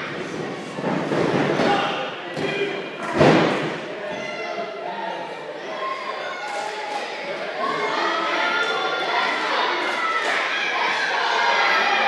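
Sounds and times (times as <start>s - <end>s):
crowd voices and shouts: 0.0s - 12.0s.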